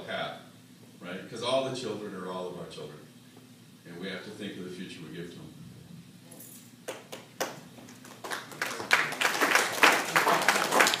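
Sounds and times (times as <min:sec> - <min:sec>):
audience applause: 0:07.9 - 0:11.0.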